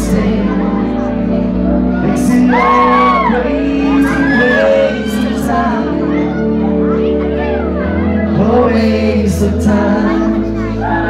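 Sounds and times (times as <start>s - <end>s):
voices singing into microphone: 0.0s - 11.0s.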